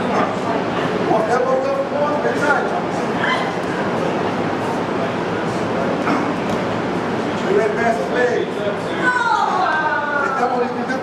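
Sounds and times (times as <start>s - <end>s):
crowd talking and calling out: 0.0s - 11.0s.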